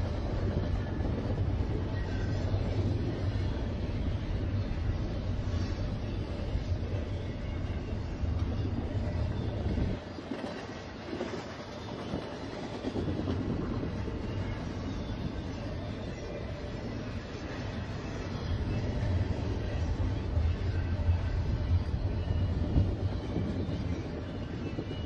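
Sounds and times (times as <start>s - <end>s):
train low rumble: 0.0s - 25.0s.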